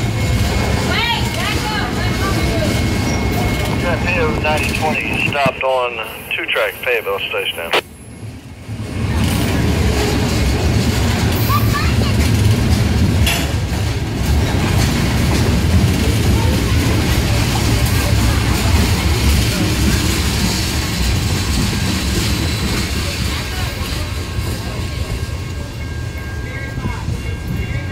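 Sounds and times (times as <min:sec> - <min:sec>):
freight train wheels rumbling: 0:00.0 - 0:27.9.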